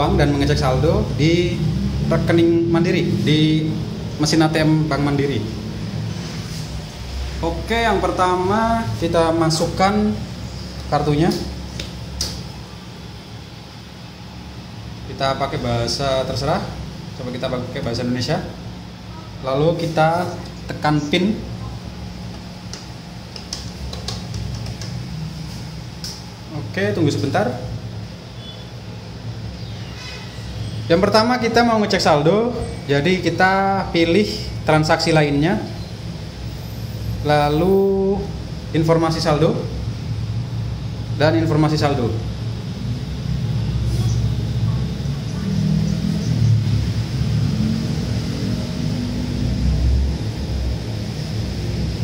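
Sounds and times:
steady low hum: 0:00.0 - 0:52.0
faint high whine: 0:25.2 - 0:52.0.

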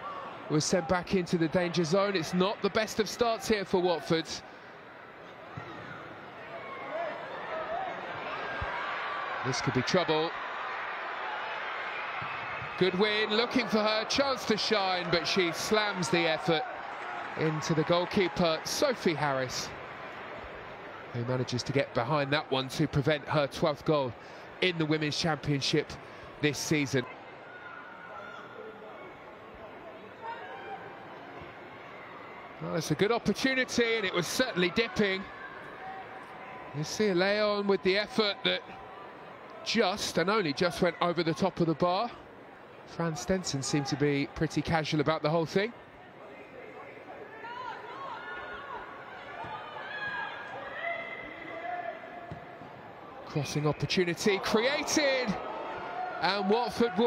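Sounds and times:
steady stadium background noise: 0:00.0 - 0:57.0
players shouting: 0:05.6 - 0:20.1, 0:32.7 - 0:41.9, 0:46.4 - 0:57.0.

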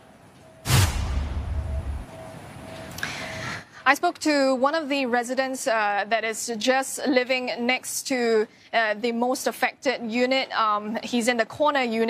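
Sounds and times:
faint background noise: 0:00.0 - 0:12.0
whoosh into low boom: 0:00.6 - 0:02.2.

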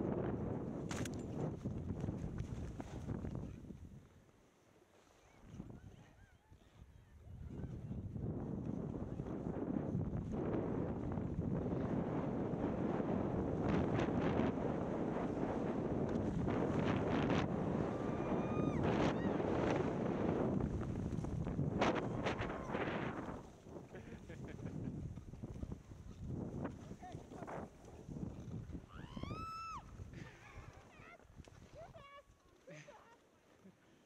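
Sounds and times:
wind buffeting microphone: 0:00.0 - 0:04.1, 0:05.4 - 0:32.0
skis sliding over snow: 0:01.4 - 0:05.6, 0:11.5 - 0:18.4, 0:19.4 - 0:34.0.

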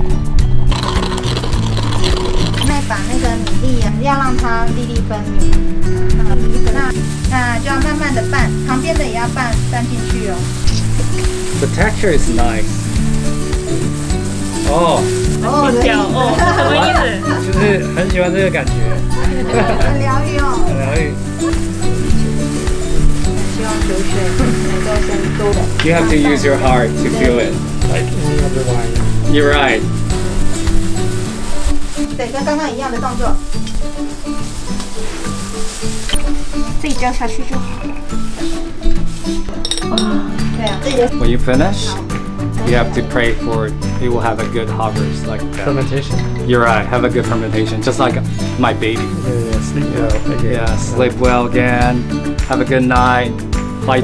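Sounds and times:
background music with low held notes: 0:00.0 - 0:54.0
plastic gloves rustling in rice: 0:00.7 - 0:04.6, 0:06.6 - 0:39.5.

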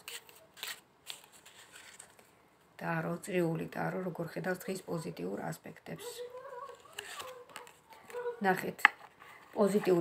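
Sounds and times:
cards being shuffled: 0:00.0 - 0:02.3, 0:06.7 - 0:10.0.

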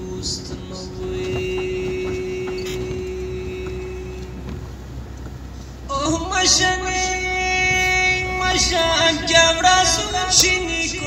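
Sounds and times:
man singing: 0:00.0 - 0:04.5, 0:05.9 - 0:11.0.

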